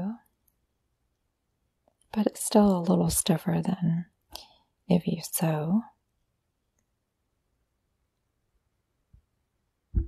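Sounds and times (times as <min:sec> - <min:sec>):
woman narrating: 0:00.0 - 0:00.2, 0:02.2 - 0:04.1, 0:04.9 - 0:05.9.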